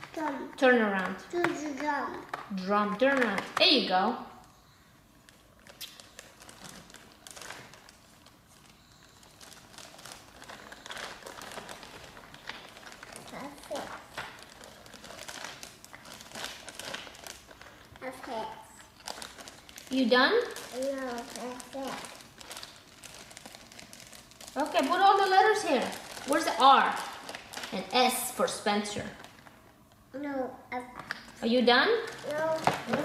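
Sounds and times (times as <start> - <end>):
plastic bag crinkling: 5.1 - 29.8, 31.1 - 33.0
plastic toy letters rummaged: 20.5 - 27.8, 32.0 - 33.0.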